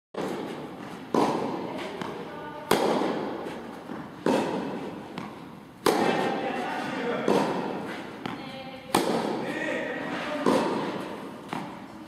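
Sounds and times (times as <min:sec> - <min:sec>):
tennis ball hits with echo: 0:00.2 - 0:11.9.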